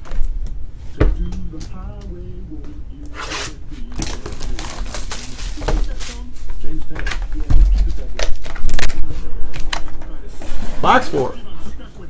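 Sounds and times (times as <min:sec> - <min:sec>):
plastic shrink-wrap crinkling and tearing: 0:04.0 - 0:06.2.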